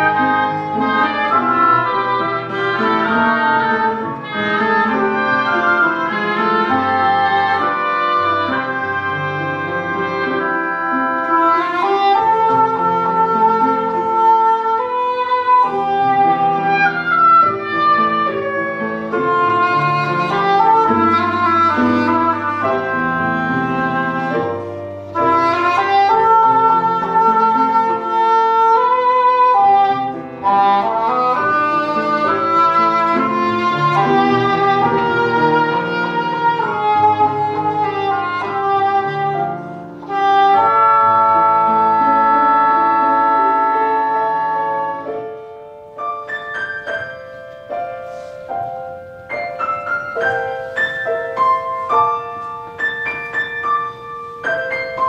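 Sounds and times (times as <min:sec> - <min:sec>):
oboes playing: 0:00.0 - 0:45.3
piano accompaniment: 0:00.0 - 0:55.0.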